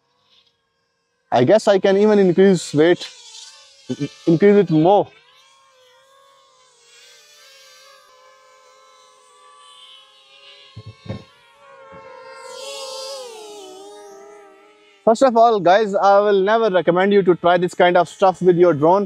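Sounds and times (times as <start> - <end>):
drone propellers whining: 1.4 - 3.1, 3.9 - 5.1, 9.2 - 19.0
dull thumps: 10.8 - 11.3.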